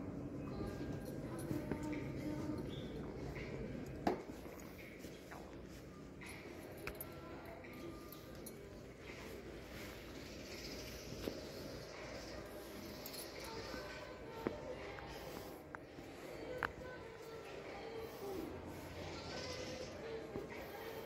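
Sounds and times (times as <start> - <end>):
indistinct distant voices: 0.0 - 21.0.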